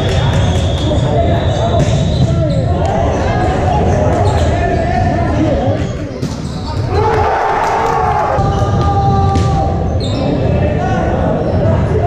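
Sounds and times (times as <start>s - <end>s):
players calling and shouting: 0.0s - 11.9s
volleyball ball contacts: 6.1s - 9.9s.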